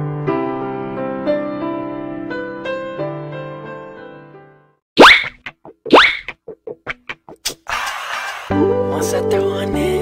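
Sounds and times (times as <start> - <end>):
cartoon bloop sound effects: 5.0 - 7.4.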